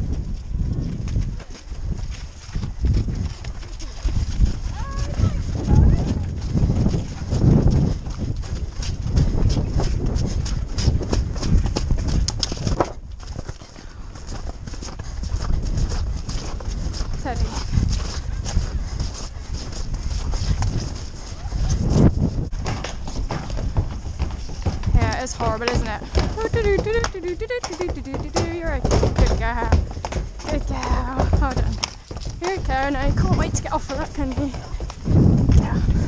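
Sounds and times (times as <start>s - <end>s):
wind rumbling on microphone: 0.0s - 36.0s
horse hoofbeats on wet turf: 0.1s - 36.0s.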